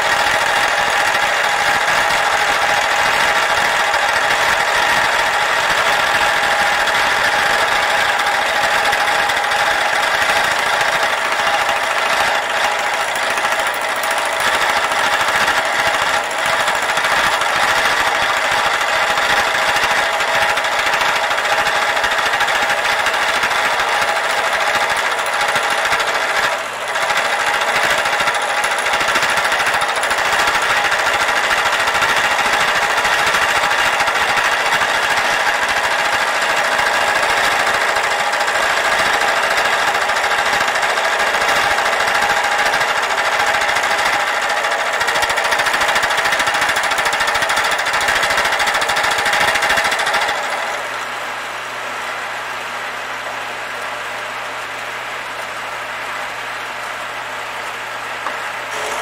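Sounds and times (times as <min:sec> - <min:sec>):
milling machine cutting metal: 0:00.0 - 0:51.9, 0:55.4 - 0:59.0.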